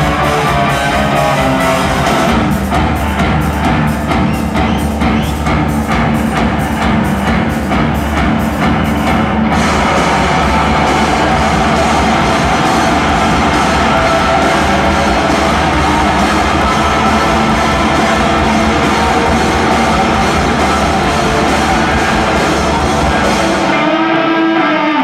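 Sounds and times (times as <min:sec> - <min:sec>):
drums: 0:00.0 - 0:25.0
loud distorted electric guitars: 0:00.0 - 0:25.0.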